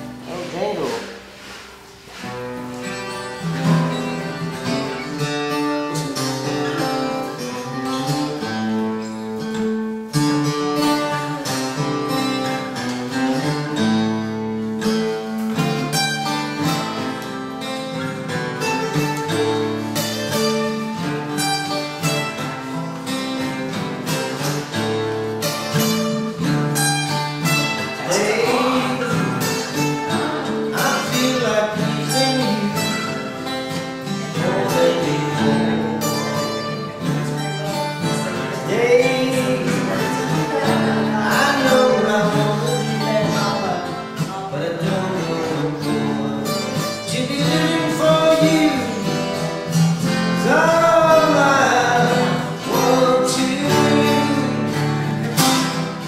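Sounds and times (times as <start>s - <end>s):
acoustic guitars strummed: 0.0s - 56.0s
person singing: 27.6s - 55.7s.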